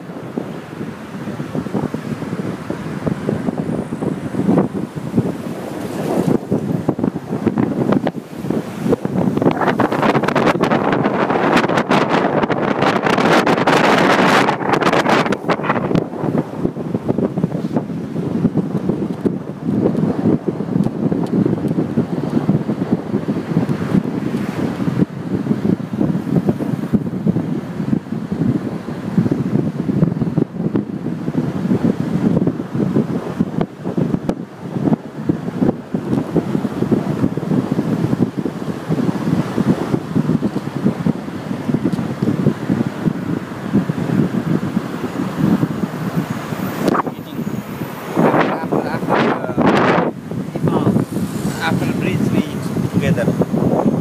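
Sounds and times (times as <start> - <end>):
car road noise: 0.0 - 54.0
wind buffeting microphone: 0.0 - 54.0.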